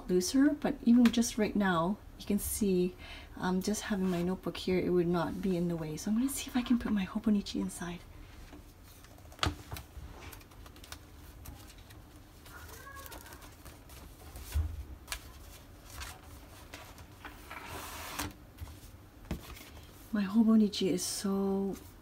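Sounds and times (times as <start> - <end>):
paper and leather rustling: 8.7 - 20.0.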